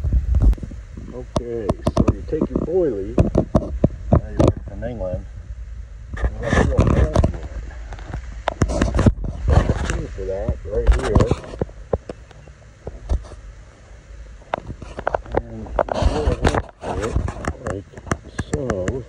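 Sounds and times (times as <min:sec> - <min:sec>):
phone handling rumble and knocks: 0:01.3 - 0:05.2, 0:06.1 - 0:13.4.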